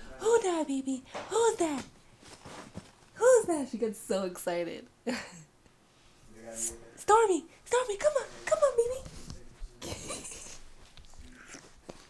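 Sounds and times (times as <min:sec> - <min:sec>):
person laughing: 0:09.8 - 0:10.7.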